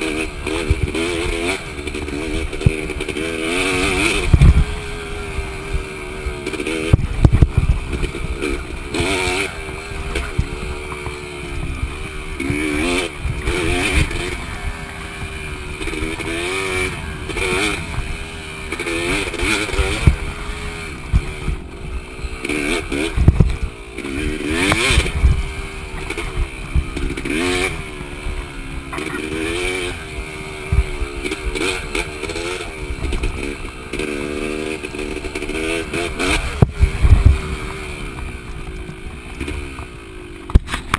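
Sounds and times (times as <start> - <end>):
dirt bike engine revving: 0.0 - 40.9.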